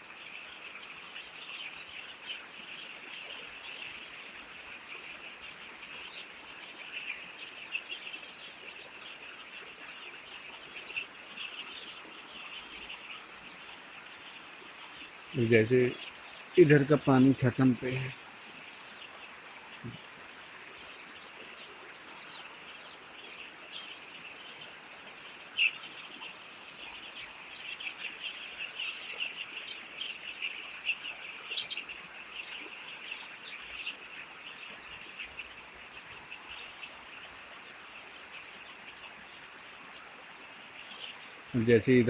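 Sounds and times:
steady hiss: 0.0s - 42.0s.

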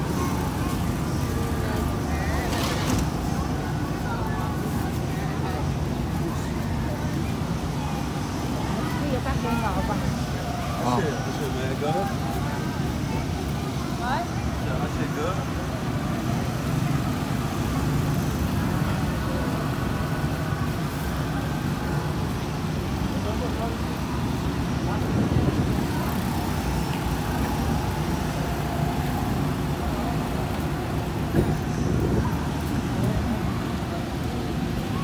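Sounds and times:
faint distant voices: 0.0s - 35.0s.

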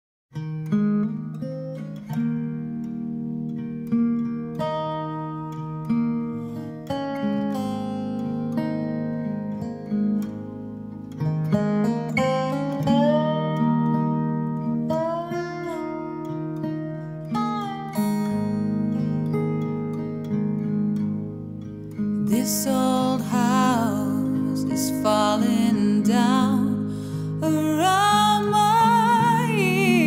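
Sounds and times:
picked guitar notes: 0.4s - 30.0s.

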